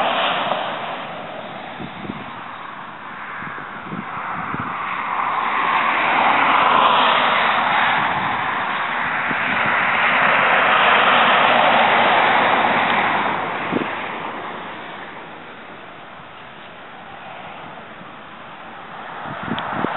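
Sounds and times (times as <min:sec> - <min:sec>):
cars passing on highway: 0:00.0 - 0:19.9.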